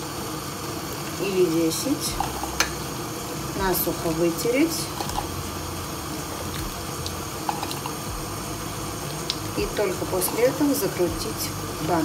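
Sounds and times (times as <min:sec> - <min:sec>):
syrup boiling in a pot: 0:00.0 - 0:12.0.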